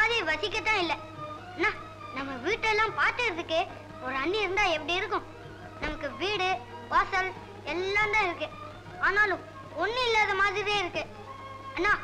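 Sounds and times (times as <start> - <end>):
boy speaking in sing-song: 0.0 - 1.0, 1.6 - 11.1, 11.8 - 12.0.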